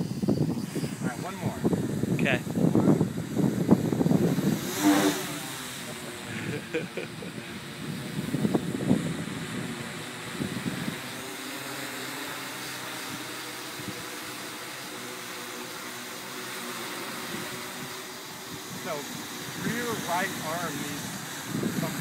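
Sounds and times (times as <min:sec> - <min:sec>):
electric motors and propellers humming: 0:00.0 - 0:22.0
people laughing: 0:06.2 - 0:07.4.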